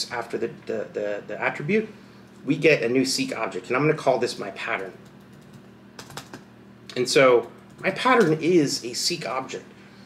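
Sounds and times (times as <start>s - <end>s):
laptop keyboard keystrokes: 5.0s - 6.5s.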